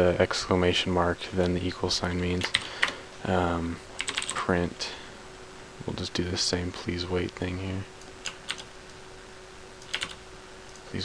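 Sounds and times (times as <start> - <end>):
faint steady hum: 0.0 - 11.0
keyboard keys clicking: 2.4 - 3.0, 4.0 - 4.4, 8.2 - 8.7, 9.8 - 10.9.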